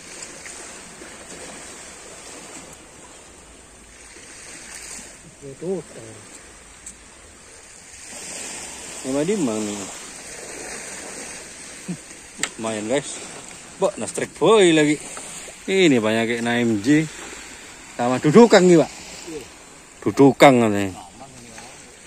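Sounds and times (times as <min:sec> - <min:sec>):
surf washing on beach: 0:00.0 - 0:22.0.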